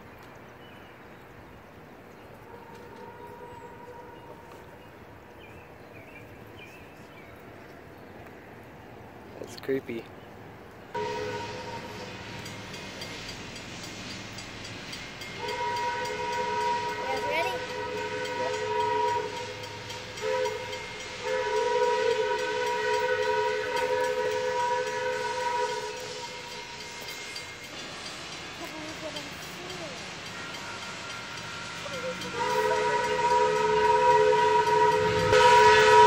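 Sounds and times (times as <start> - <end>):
steam locomotive whistle blasts: 2.4 - 4.7, 11.0 - 13.0, 15.2 - 28.2, 30.1 - 36.0.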